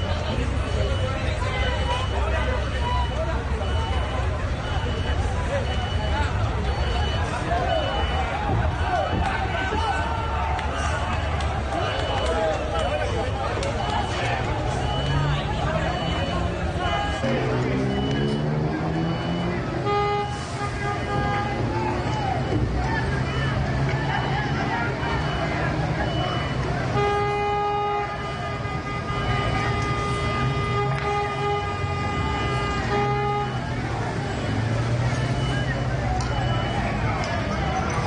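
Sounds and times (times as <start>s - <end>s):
car horns honking: 0.0s - 38.0s
people shouting: 7.5s - 18.3s.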